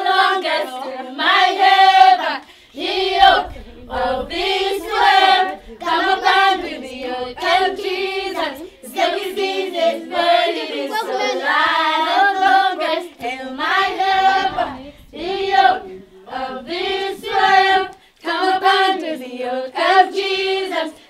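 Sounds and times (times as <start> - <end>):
children singing together: 0.0 - 21.0.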